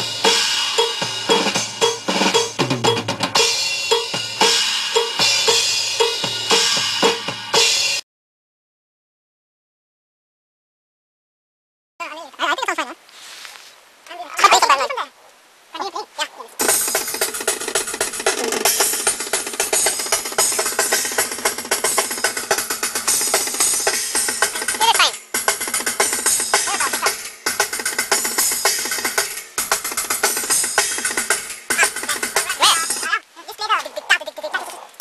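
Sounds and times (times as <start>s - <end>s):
drum kit playing fast: 0.0s - 8.0s, 16.6s - 33.2s.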